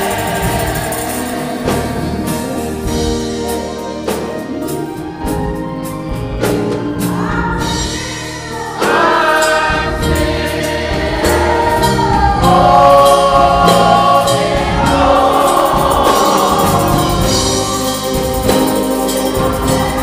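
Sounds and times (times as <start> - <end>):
electronic keyboard: 0.0 - 20.0
gospel choir singing: 0.0 - 20.0.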